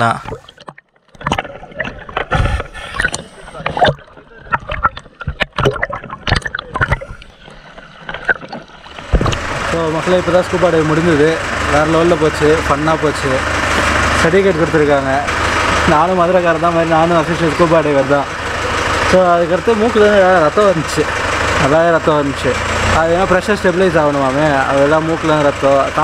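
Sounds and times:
man talking: 0:00.0 - 0:00.4, 0:09.7 - 0:13.4, 0:14.2 - 0:18.3, 0:19.1 - 0:26.0
water splashing and sloshing: 0:00.0 - 0:10.0
sharp knocks and clicks: 0:00.3 - 0:09.6
steady low hum: 0:02.0 - 0:16.0.

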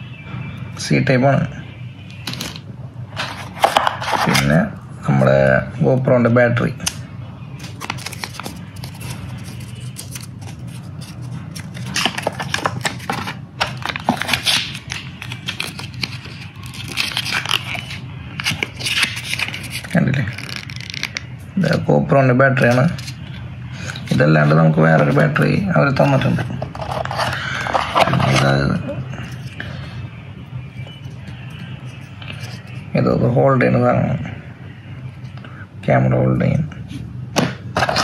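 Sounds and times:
steady low hum: 0:00.0 - 0:38.0
packaging rustling and crinkling: 0:07.6 - 0:21.3.

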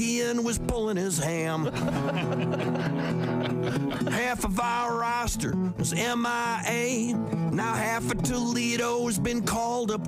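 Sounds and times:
acoustic blues guitar: 0:00.0 - 0:10.0.

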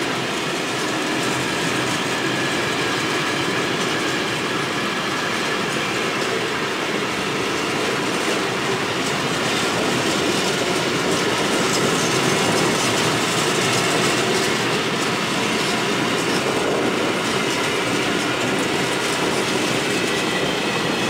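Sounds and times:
train wheels rumbling on rails: 0:00.0 - 0:21.0.

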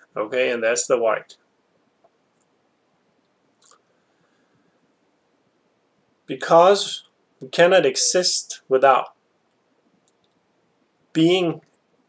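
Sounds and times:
man speaking: 0:00.0 - 0:01.4, 0:06.3 - 0:09.2, 0:11.1 - 0:11.7
faint clicks: 0:03.2 - 0:03.9, 0:09.5 - 0:10.4.

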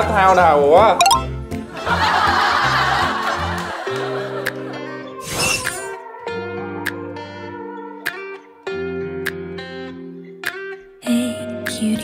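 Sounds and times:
people laughing: 0:01.7 - 0:05.0.

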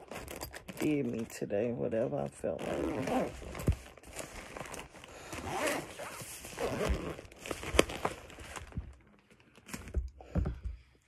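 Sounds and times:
rustling and scraping: 0:03.0 - 0:09.0.

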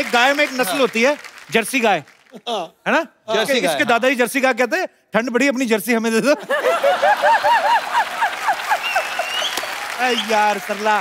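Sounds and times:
audience applause and laughter: 0:06.5 - 0:11.0.

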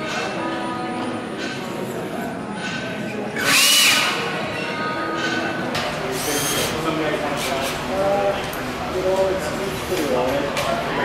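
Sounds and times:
voices chattering in echoing room: 0:00.0 - 0:11.0.

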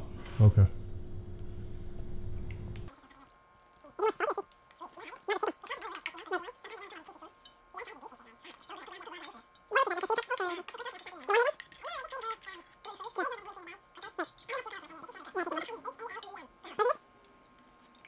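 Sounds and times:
metal spoons clinking in saucepans: 0:08.8 - 0:13.4, 0:14.0 - 0:14.8.

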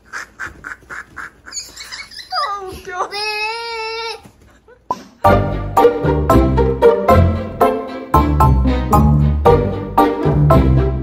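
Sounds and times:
girl giggling: 0:00.0 - 0:05.2
high-pitched voice: 0:02.1 - 0:04.3.

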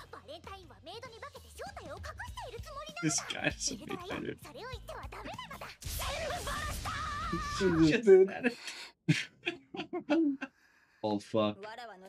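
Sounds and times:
high-pitched character voices: 0:02.9 - 0:08.0.

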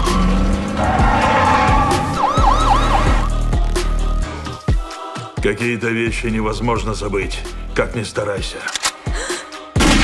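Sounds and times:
police siren yelping: 0:00.0 - 0:03.3.

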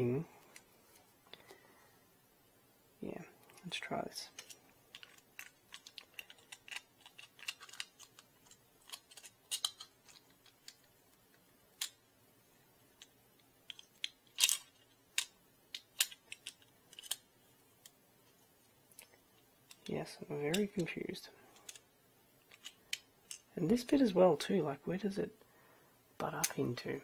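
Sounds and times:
plastic parts clicking and tapping: 0:04.3 - 0:12.0, 0:13.0 - 0:18.0, 0:19.0 - 0:19.9, 0:20.5 - 0:23.5.

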